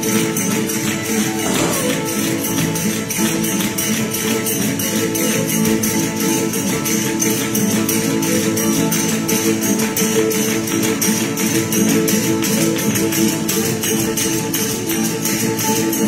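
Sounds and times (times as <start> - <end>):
strummed guitars: 0.0 - 16.0
tambourines shaken and struck: 0.0 - 16.0.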